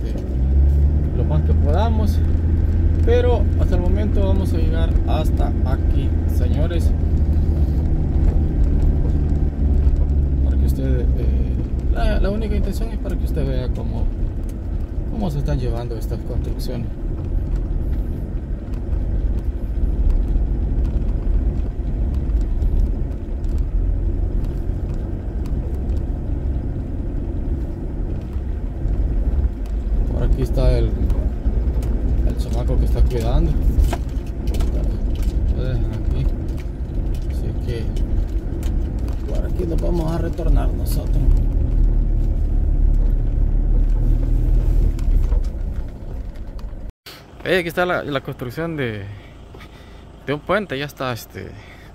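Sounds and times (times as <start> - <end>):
car driving on rough dirt road: 0.0 - 51.9.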